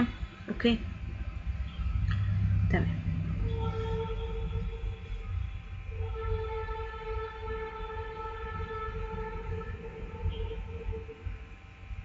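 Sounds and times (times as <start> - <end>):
low background rumble: 0.0 - 12.0
steady pitched tone: 0.0 - 12.0.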